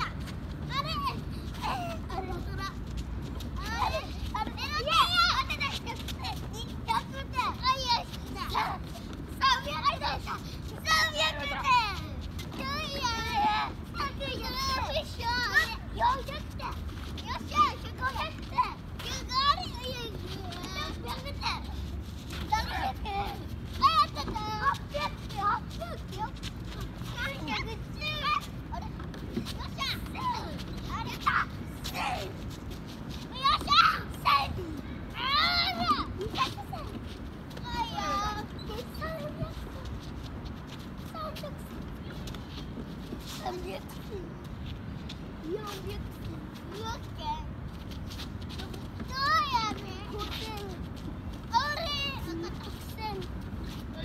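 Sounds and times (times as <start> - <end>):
small children calling out: 0.0 - 32.6, 33.2 - 40.1, 48.1 - 54.0.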